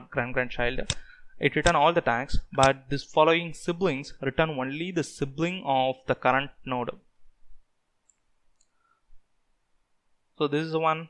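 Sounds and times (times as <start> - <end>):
computer mouse clicks: 8.0 - 8.8.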